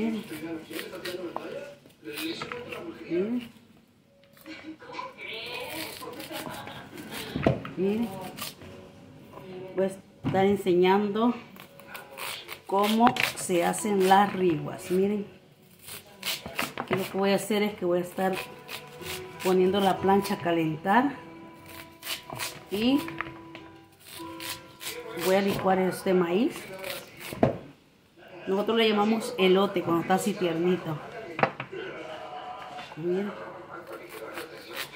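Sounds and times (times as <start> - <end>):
soft background music: 0.0 - 34.9
knife scraping corn kernels: 5.7 - 7.4, 11.8 - 15.0, 15.8 - 17.2, 18.2 - 19.7, 21.6 - 23.0, 24.0 - 25.6, 26.6 - 27.4, 33.8 - 34.9.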